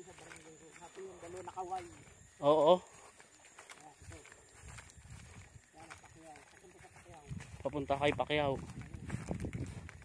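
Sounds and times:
soft thumps of footsteps: 0.0s - 10.0s.

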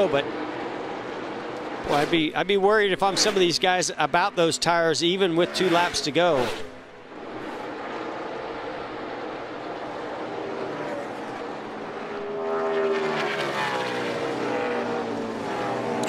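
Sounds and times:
race car engines: 0.0s - 16.0s
race car passing by: 0.0s - 16.0s.

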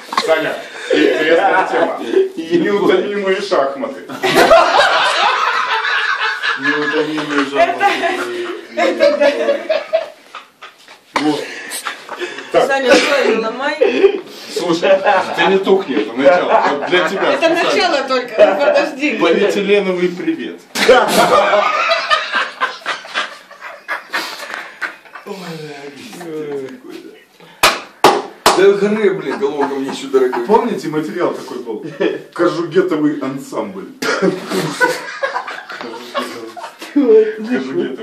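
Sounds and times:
men laughing hard: 4.2s - 12.5s, 20.8s - 26.4s, 29.0s - 30.8s, 34.0s - 37.8s.

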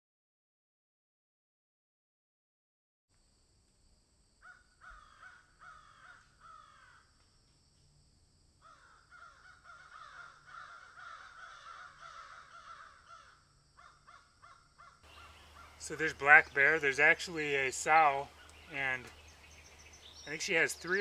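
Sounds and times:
faint bird calls: 4.4s - 7.1s, 8.6s - 21.0s.

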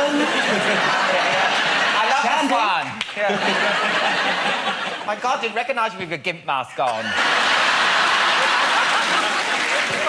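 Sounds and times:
audience applauding and laughing: 0.0s - 5.2s, 6.9s - 10.0s.

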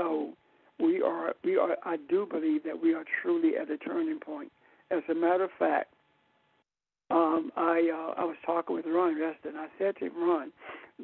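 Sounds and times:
person talking over telephone line: 7.1s - 10.5s.

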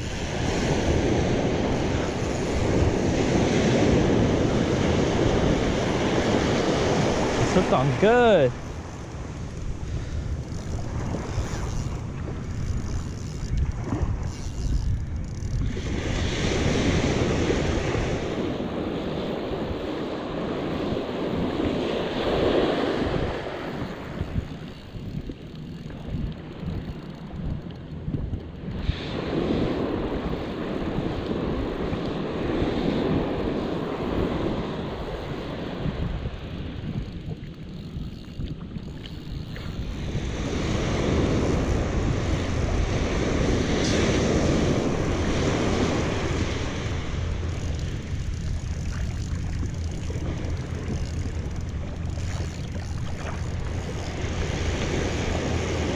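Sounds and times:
surf breaking on beach: 0.0s - 9.2s, 15.7s - 24.4s, 39.8s - 47.6s
wind buffeting microphone: 0.0s - 55.9s.

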